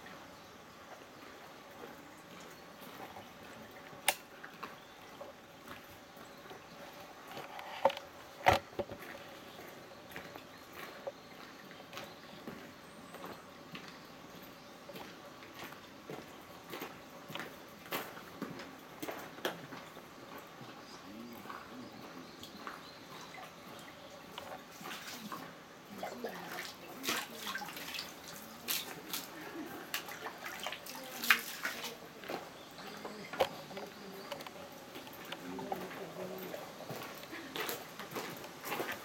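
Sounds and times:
ladle scooping water: 0:22.5 - 0:34.5
water poured into stone basin: 0:26.3 - 0:29.4, 0:30.0 - 0:32.0
footsteps on gravel: 0:31.2 - 0:39.0.

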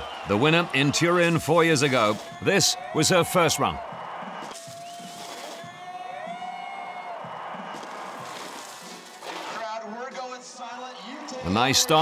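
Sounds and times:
music playing: 0:00.0 - 0:09.6
crowd noise: 0:00.0 - 0:12.0.

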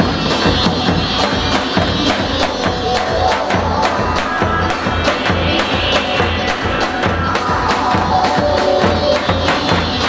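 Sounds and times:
melody of held notes: 0:01.9 - 0:08.8.

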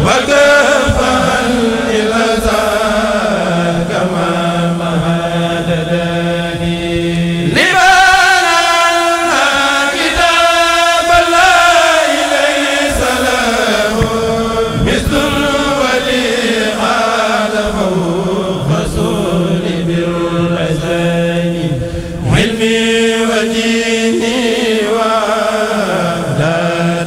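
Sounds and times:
men chanting through microphones: 0:00.0 - 0:27.0.

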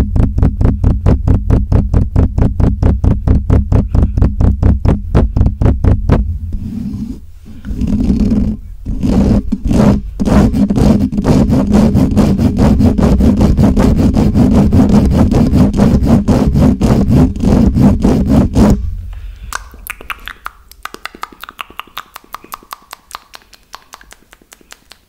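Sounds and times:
fingers scratching on microphone: 0:00.7 - 0:18.8.

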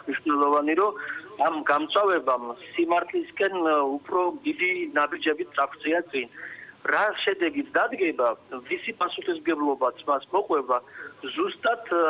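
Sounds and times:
man speaking over telephone: 0:00.0 - 0:12.0.

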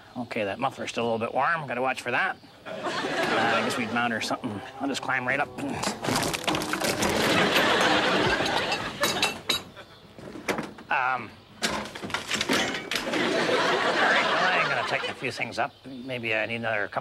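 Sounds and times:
audience laughing: 0:02.7 - 0:04.2, 0:06.9 - 0:09.9, 0:13.0 - 0:15.6
metal parts clattering to floor: 0:05.8 - 0:10.7, 0:11.6 - 0:13.2.

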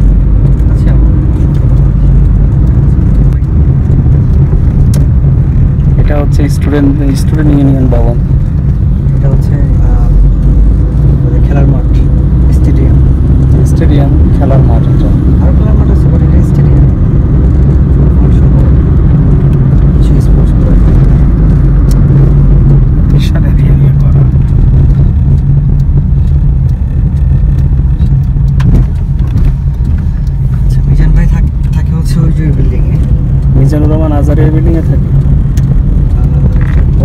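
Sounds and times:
car engine and tyre rumble: 0:00.0 - 0:37.0
scattered clicks: 0:00.0 - 0:37.0.

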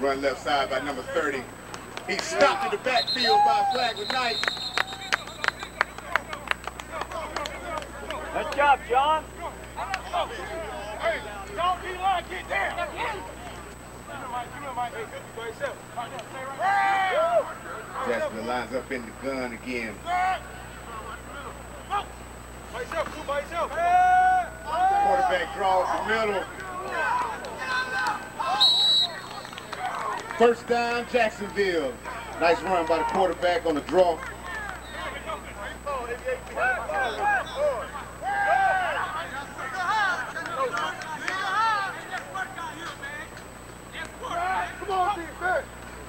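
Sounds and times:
sharp claps: 0:01.7 - 0:02.6, 0:03.2 - 0:08.7, 0:28.8 - 0:30.5, 0:33.0 - 0:34.8, 0:40.3 - 0:44.2
crowd shouting: 0:02.1 - 0:18.2, 0:20.0 - 0:43.3, 0:44.0 - 0:45.7
referee's whistle: 0:02.6 - 0:06.2, 0:28.3 - 0:29.8, 0:34.7 - 0:35.3, 0:37.0 - 0:37.8.

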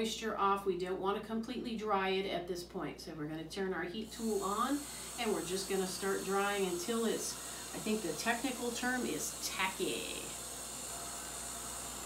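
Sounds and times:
heat tool blowing hot air: 0:04.0 - 0:12.0.

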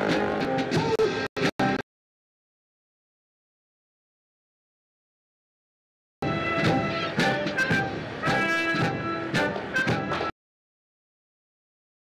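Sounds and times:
brass band playing: 0:00.0 - 0:01.8, 0:06.2 - 0:10.3.

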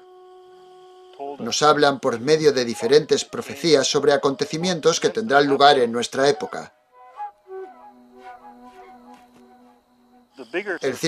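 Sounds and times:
soft flute music: 0:00.0 - 0:11.0.

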